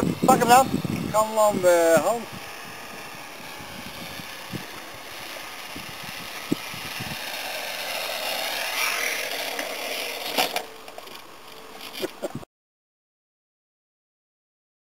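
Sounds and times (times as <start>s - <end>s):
model airplane motor hum: 0.0s - 12.4s.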